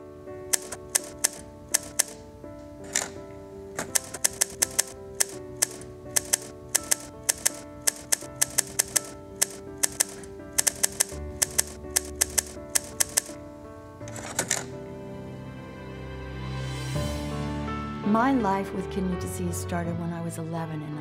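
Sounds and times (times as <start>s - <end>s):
soft background music: 0.0s - 21.0s
typewriter clacking: 0.5s - 2.2s, 2.8s - 3.2s, 3.8s - 13.4s, 14.1s - 14.7s.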